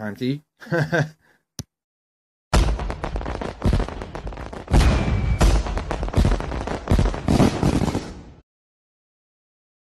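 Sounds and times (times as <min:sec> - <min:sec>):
fireworks bursting: 0:02.5 - 0:08.4.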